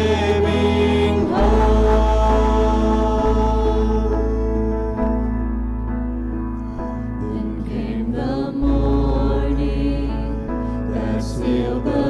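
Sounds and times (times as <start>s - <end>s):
choir singing in harmony: 0.0s - 5.4s, 7.2s - 12.0s
instrumental backing with bass: 0.0s - 12.0s.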